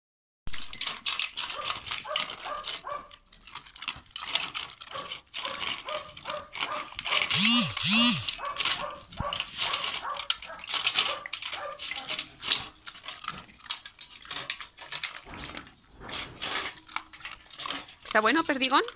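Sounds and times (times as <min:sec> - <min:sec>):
dog crunching dry food: 0:00.5 - 0:18.9
short rising and falling calls: 0:07.3 - 0:08.4
kibble clicking against metal bowl: 0:08.3 - 0:15.7.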